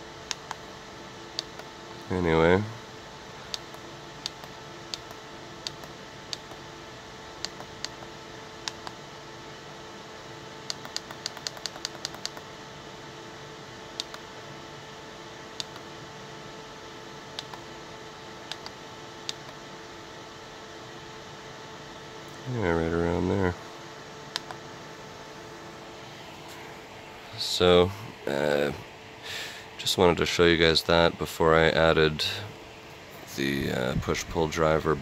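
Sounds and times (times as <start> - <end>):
steady faint hum: 0.0 - 35.0.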